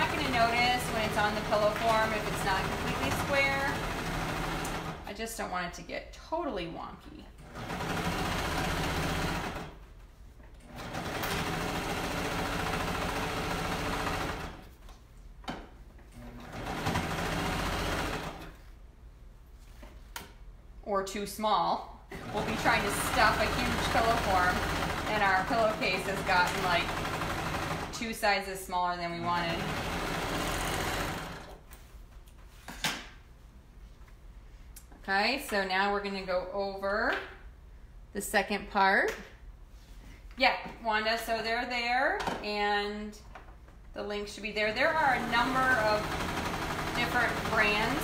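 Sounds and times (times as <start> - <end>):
sewing machine stitching: 0.0 - 5.1, 7.4 - 9.8, 10.6 - 14.7, 16.2 - 18.6, 22.1 - 28.2, 29.0 - 31.6, 44.7 - 48.0.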